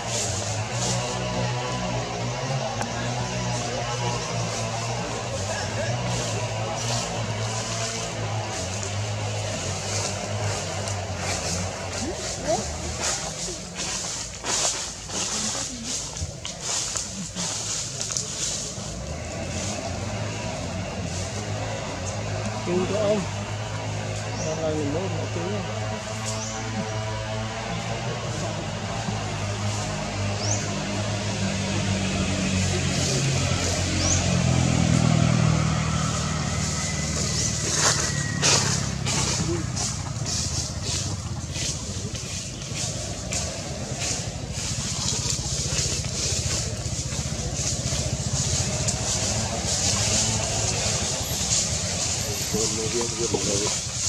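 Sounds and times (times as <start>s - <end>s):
indistinct voices: 0.0s - 54.0s
low engine hum: 0.0s - 54.0s.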